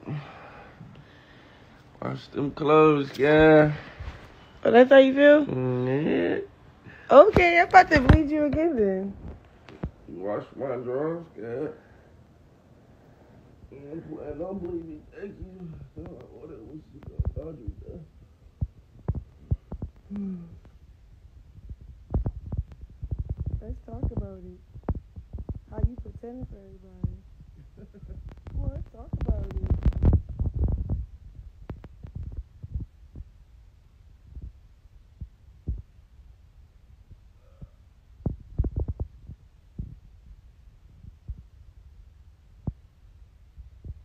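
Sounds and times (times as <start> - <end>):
steady low hum: 0.0 - 44.0
dull low thumps: 17.0 - 44.0.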